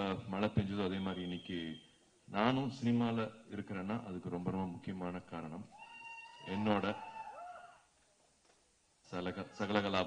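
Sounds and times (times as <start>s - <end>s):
man speaking into a microphone: 0.0s - 5.7s, 6.4s - 7.1s, 9.0s - 10.0s.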